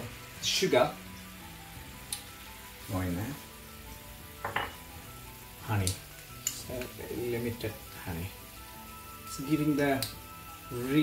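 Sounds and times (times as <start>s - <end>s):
liquid sizzling in fat: 0.0s - 11.0s
quiet background music: 0.0s - 11.0s.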